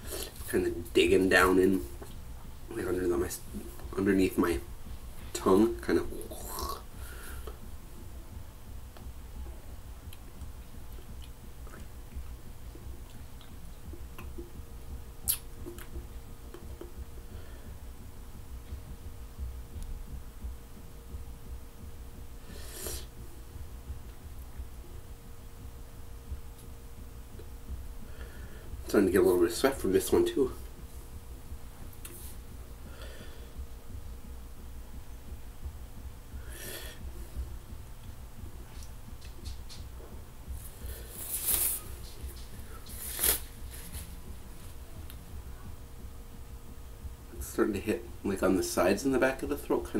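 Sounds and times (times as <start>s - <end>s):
low steady hum: 0.0s - 49.9s
low steady rumble: 0.0s - 49.9s
mouth smacks and tongue clicks: 13.0s - 14.5s, 15.2s - 17.0s, 38.7s - 39.9s
man breathing sharply through nose: 22.4s - 23.1s, 28.0s - 28.8s, 32.8s - 33.6s, 36.4s - 37.3s.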